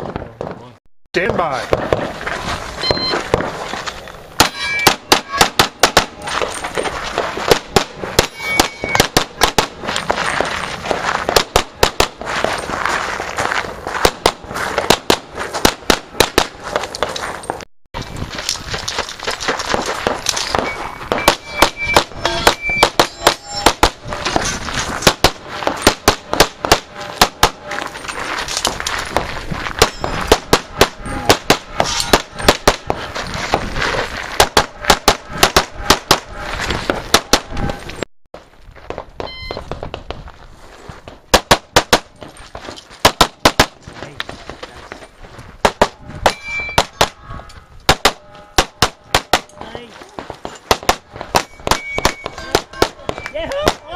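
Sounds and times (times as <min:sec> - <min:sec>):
pistol shots: 0:04.4 - 0:06.2, 0:07.4 - 0:09.8, 0:11.3 - 0:12.2, 0:14.0 - 0:17.1, 0:25.0 - 0:27.7, 0:29.8 - 0:33.0, 0:43.0 - 0:43.8, 0:47.9 - 0:49.6.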